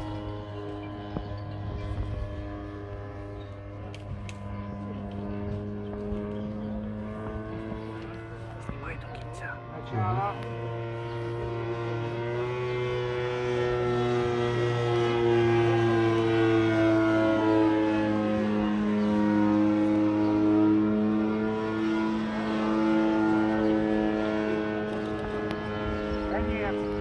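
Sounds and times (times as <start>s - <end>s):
model airplane engine drone: 0.0s - 27.0s.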